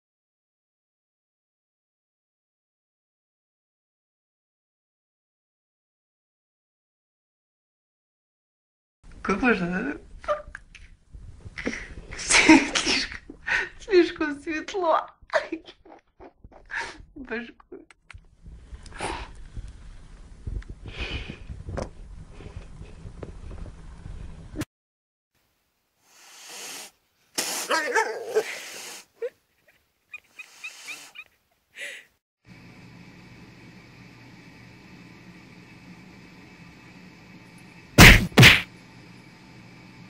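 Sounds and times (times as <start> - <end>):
cat hissing with yowl: 26.0 - 29.2, 30.2 - 31.3
sneeze-like burst of breath: 26.1 - 29.2.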